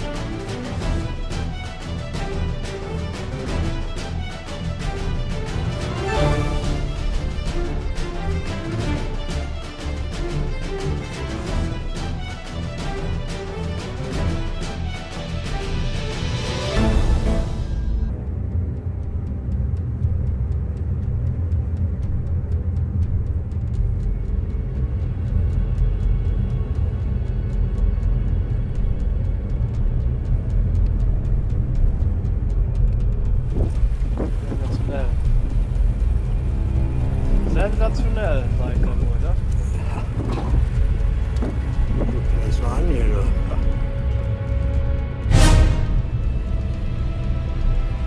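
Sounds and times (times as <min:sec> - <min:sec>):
strong wind buffeting microphone: 0:30.8 - 0:37.6, 0:38.3 - 0:44.2.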